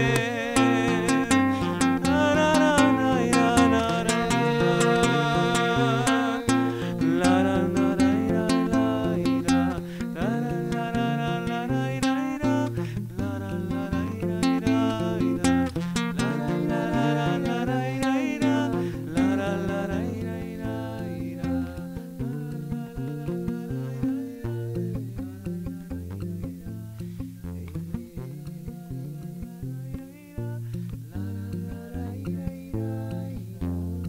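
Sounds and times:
acoustic guitars playing: 0.0s - 34.0s
man singing: 0.0s - 34.0s.

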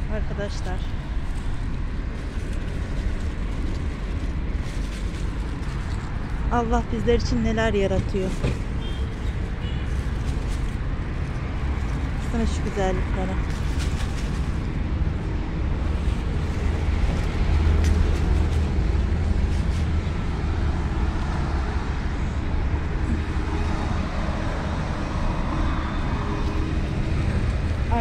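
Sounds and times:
low outdoor rumble: 0.0s - 28.0s.

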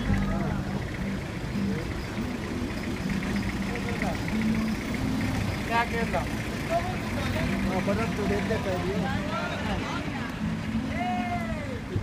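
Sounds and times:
people talking: 3.6s - 12.0s.

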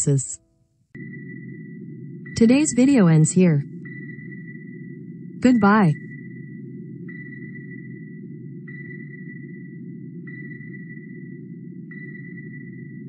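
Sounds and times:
sonar pings: 0.0s - 13.0s.

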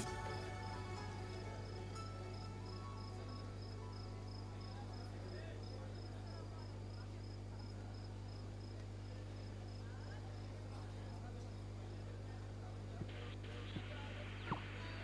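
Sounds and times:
faint background chatter: 0.0s - 15.0s
faint high-pitched pulsing tone: 12.0s - 15.0s.

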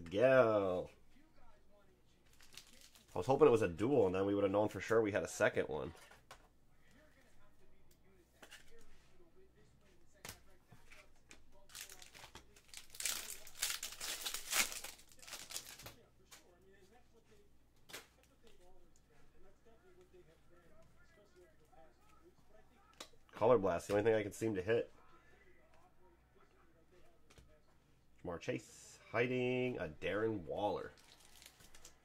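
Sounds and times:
foil wrapper tearing and crinkling: 2.3s - 3.2s, 11.6s - 16.0s, 31.0s - 31.9s
cards and plastic clicking: 31.0s - 32.0s.

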